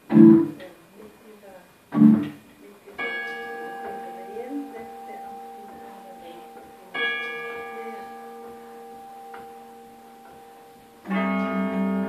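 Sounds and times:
carillon bell chord ringing: 3.0 - 12.0.

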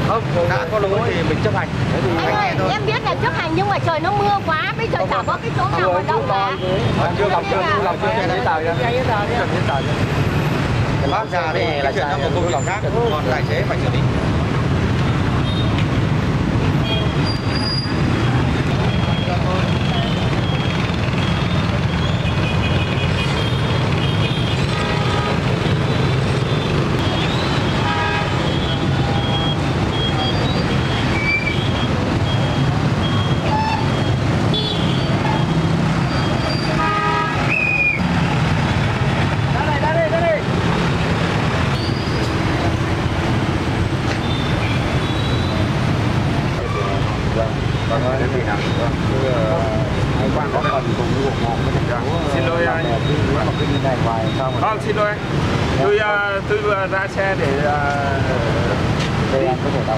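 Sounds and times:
traffic engine and road noise: 0.0 - 59.9
motorbike and car horns tooting: 16.7 - 38.7.

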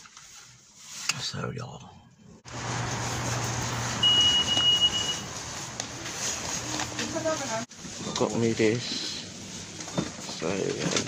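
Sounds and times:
high electronic beep: 4.0 - 5.2.

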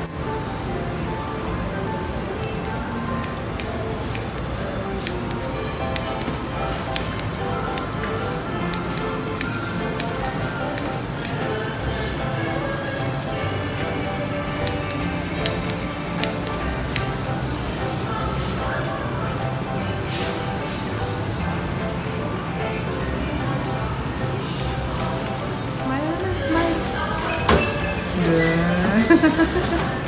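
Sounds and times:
background music: 0.0 - 30.0
scissors snipping hair: 2.4 - 11.6, 13.1 - 17.2.

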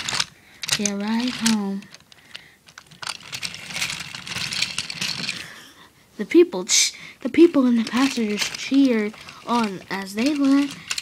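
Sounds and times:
toy trains rattling on plastic track: 0.0 - 5.5, 7.4 - 11.0.

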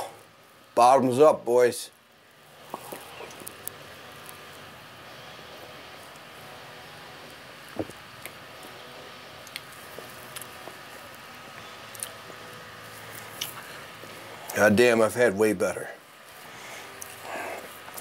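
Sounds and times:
room noise hiss: 0.0 - 18.0.

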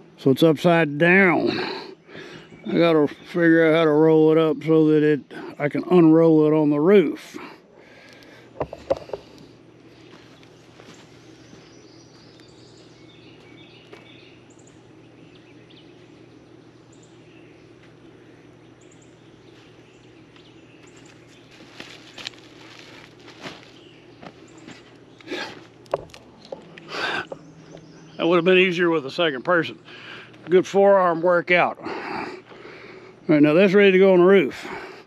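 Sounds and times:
steady low hum: 0.0 - 35.0
fabric cover rustling and scraping: 21.5 - 23.9.

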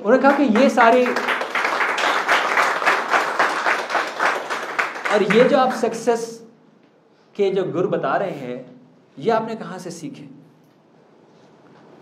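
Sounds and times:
audience applauding: 0.1 - 5.8.

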